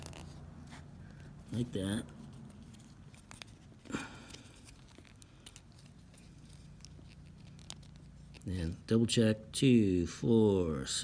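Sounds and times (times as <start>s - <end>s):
fingers rustling and clicking: 0.0s - 8.6s
low steady hum: 0.0s - 11.0s.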